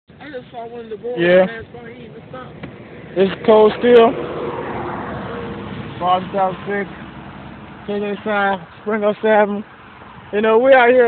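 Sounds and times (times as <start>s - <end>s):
vehicle passing on road: 0.2s - 11.0s.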